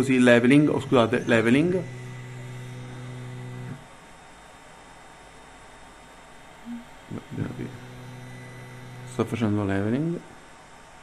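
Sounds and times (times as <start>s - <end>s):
stepper motors humming: 0.0s - 3.9s, 6.7s - 9.8s.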